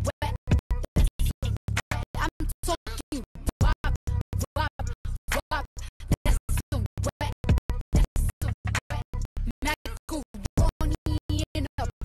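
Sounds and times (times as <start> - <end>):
stuttering music with pitch glides: 0.3 - 12.0.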